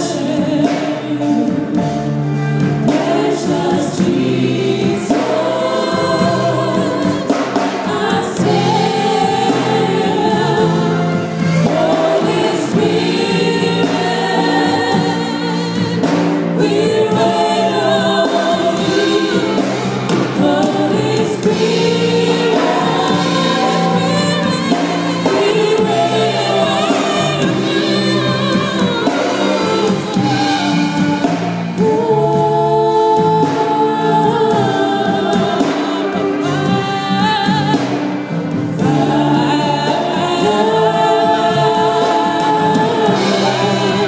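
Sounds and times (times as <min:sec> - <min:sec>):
backing choir singing: 0:00.0 - 0:44.0
band with keyboard and guitar: 0:00.0 - 0:44.0
woman singing gospel: 0:00.0 - 0:44.0.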